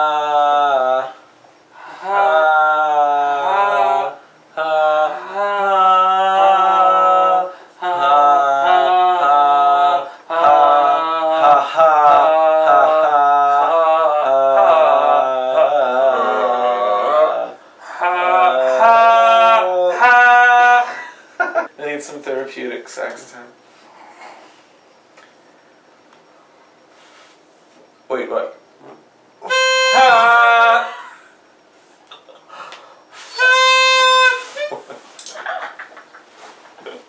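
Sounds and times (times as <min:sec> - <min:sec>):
men singing wordless vowels: 0:00.0 - 0:21.7, 0:29.4 - 0:31.5.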